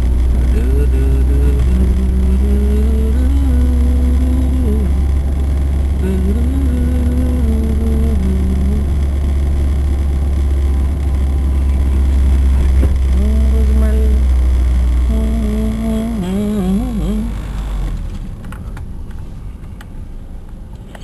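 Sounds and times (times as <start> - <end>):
car engine rumble and road noise: 0.0 - 21.0
person humming a tune: 0.5 - 5.0, 6.0 - 8.9, 15.1 - 17.4.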